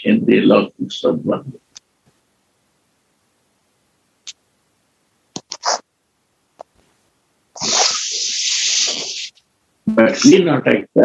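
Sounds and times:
person sneezing: 7.6 - 9.3.

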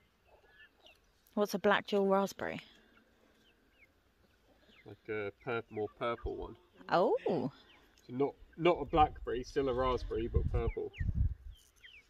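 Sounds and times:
small bird chirping: 2.8 - 12.0.

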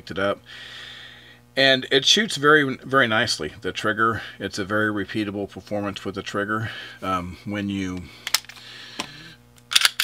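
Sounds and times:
pistol clicks: 9.7 - 10.0
pistol slide pulled and released: 9.7 - 10.0.

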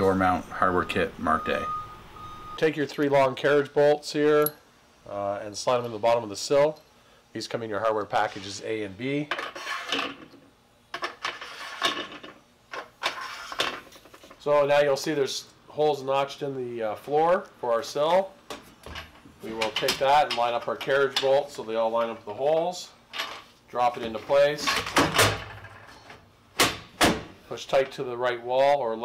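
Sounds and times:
metal bolts clicking and scraping: 18.8 - 22.2.

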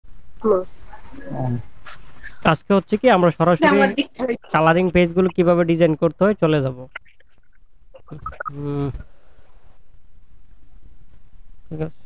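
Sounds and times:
short vocal sounds: 8.0 - 9.1.

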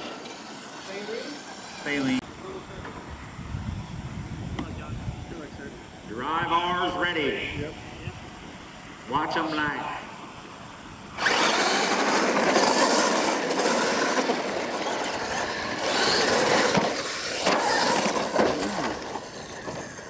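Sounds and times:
toy trucks racing on dirt: 0.0 - 3.1, 11.1 - 20.0.

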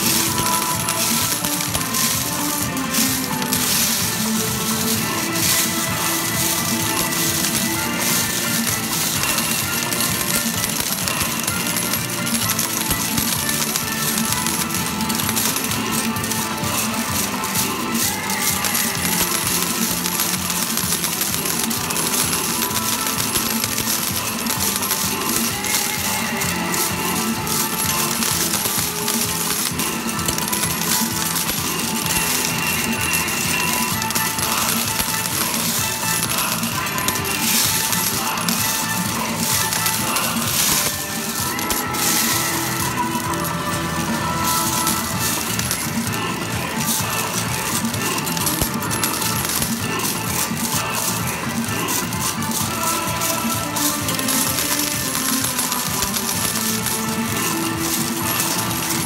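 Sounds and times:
electronic arcade music: 0.0 - 59.0
metal medals clinking: 0.0 - 59.0.

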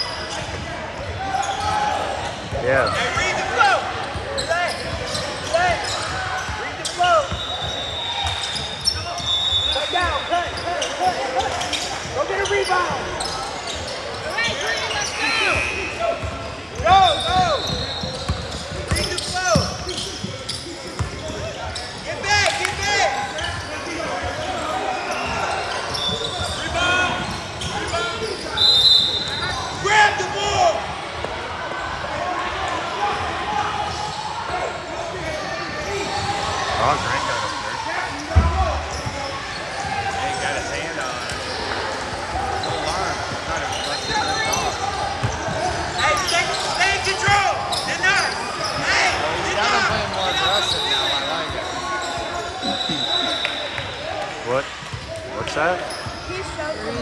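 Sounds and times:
sneakers squeaking on court: 0.0 - 29.9, 38.1 - 57.0
crowd chatter and shouts: 0.0 - 57.0.

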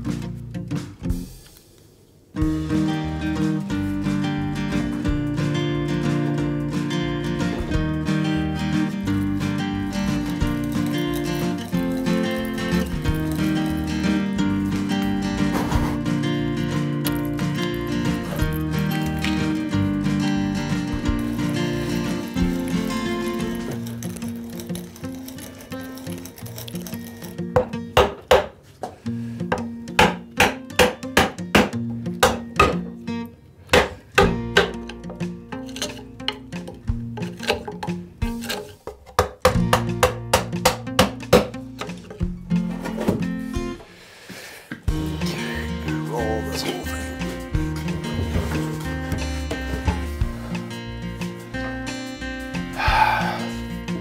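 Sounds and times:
acoustic background music: 0.0 - 1.7, 2.3 - 54.0.

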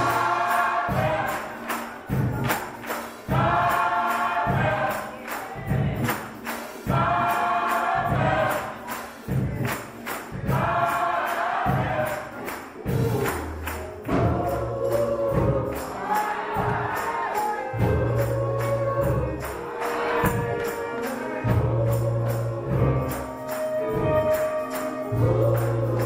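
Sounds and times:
gospel choir singing: 0.0 - 26.0
sharp percussion strokes: 0.0 - 26.0.

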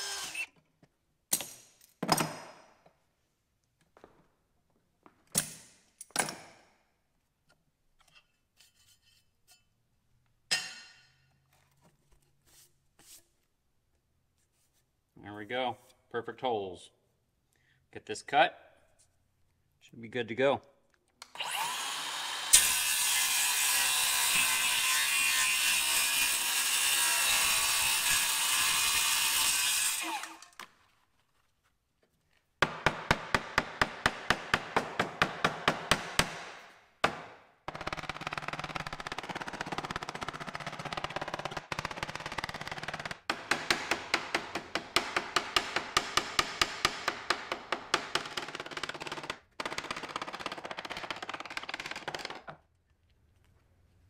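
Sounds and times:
circular saw cutting plastic sheet: 0.0 - 0.6, 21.4 - 30.6.

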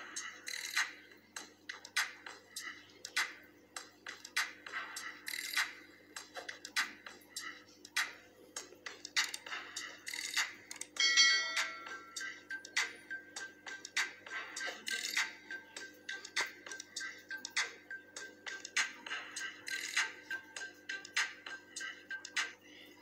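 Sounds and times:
bright bell-like chime: 11.0 - 12.3.

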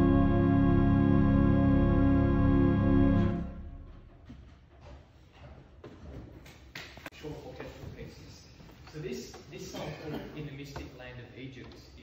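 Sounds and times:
faint shuffling: 4.1 - 12.0.

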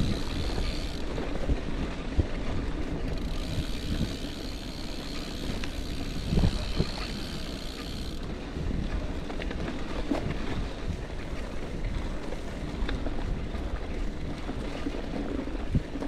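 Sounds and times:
bike tyre rumble on dirt: 0.0 - 16.0
wind buffeting microphone: 0.0 - 16.0.

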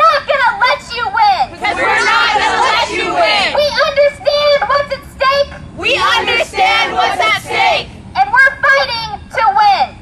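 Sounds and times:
woman speaking through megaphone: 0.0 - 10.0.

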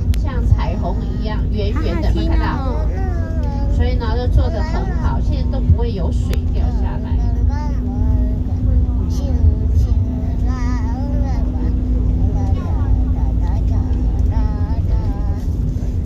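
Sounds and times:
low engine drone: 0.0 - 16.0.

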